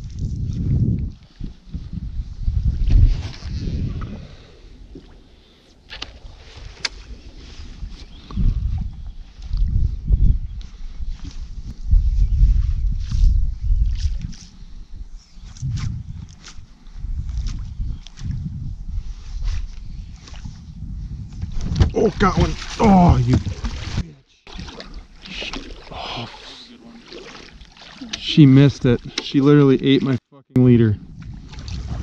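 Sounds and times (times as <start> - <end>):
wind gusting on microphone: 0.0 - 24.1, 30.6 - 32.0
waves lapping against boat hull: 21.3 - 30.2, 31.2 - 32.0.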